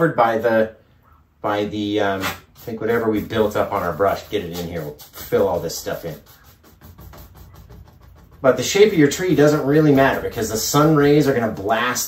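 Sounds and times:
paintbrush scratchy taps on canvas: 6.0s - 10.2s.

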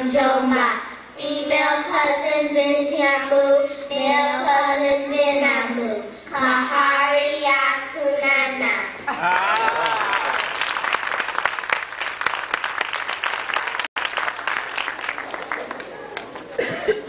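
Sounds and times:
audience applauding: 9.1s - 16.6s.

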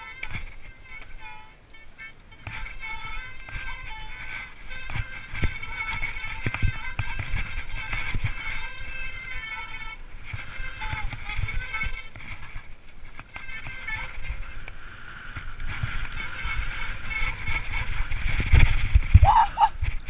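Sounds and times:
bike rattling over rough ground: 0.0s - 20.0s.

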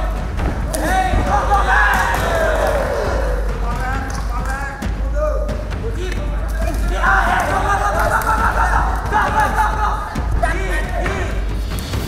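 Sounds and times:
voices shouting: 0.0s - 4.1s, 5.1s - 11.5s.

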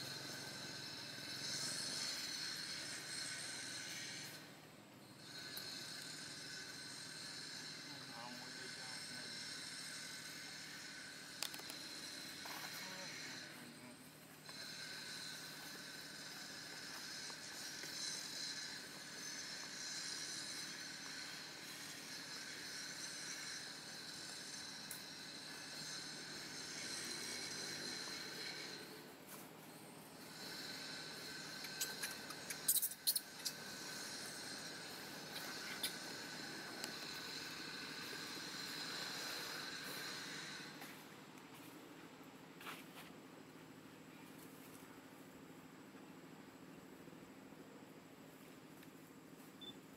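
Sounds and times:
insects droning: 0.0s - 49.9s.

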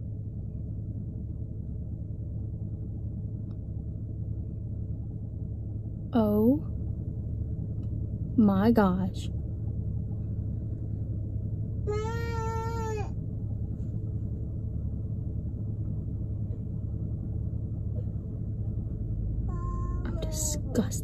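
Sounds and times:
low rumble inside car: 0.0s - 21.0s.

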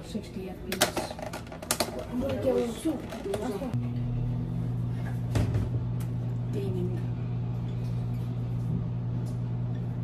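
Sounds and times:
microwave oven humming: 1.5s - 10.0s.

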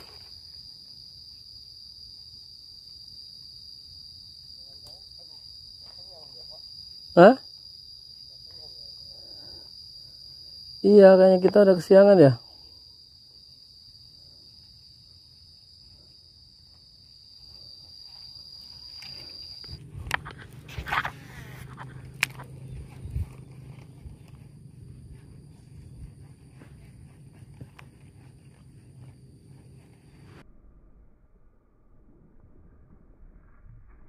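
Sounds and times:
insect trilling: 0.0s - 30.4s
low hum: 17.5s - 34.0s.

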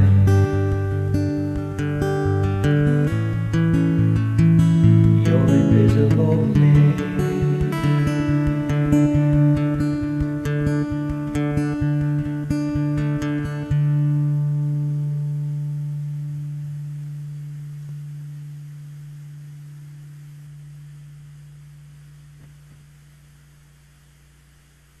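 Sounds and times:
acoustic guitar strums and chord: 0.0s - 23.8s.

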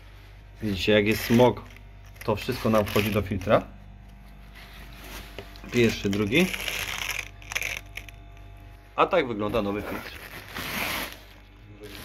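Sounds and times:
filters rustling and crackling: 4.4s - 8.3s.

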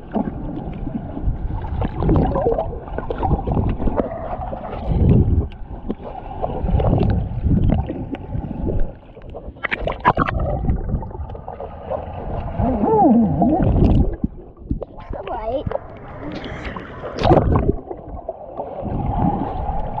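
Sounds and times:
muffled underwater gurgling: 0.0s - 20.0s
water splash: 0.0s - 20.0s.

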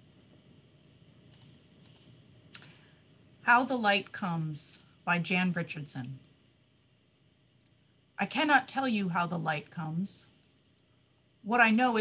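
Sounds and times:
faint small clicks: 1.3s - 2.8s, 7.6s - 7.8s.

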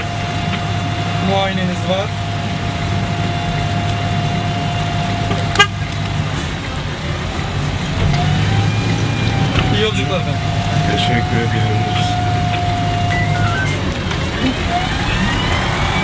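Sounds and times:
idling engine rumble: 0.0s - 16.0s
street traffic: 0.0s - 16.0s
steady high-pitched tone: 13.0s - 13.8s.

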